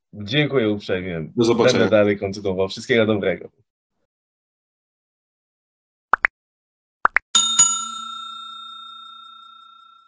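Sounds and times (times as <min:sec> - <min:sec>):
bell-like chime: 0:07.4 - 0:10.0.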